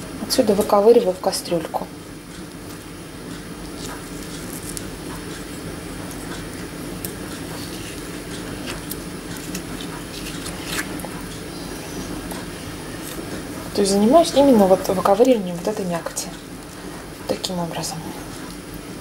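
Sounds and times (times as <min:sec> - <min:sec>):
steady low hum: 0:00.0 - 0:19.0
spoon scraping kiwi flesh: 0:03.6 - 0:13.5
wet squishing: 0:05.9 - 0:11.5.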